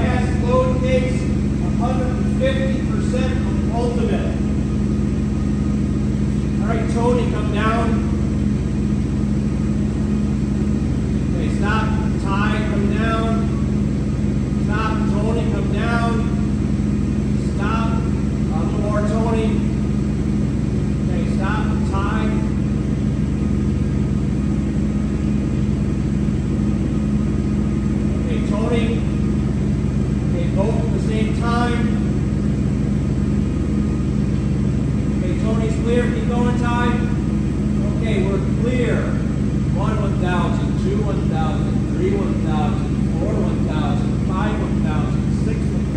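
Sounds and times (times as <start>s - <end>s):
forklift engine idling: 0.0s - 45.9s.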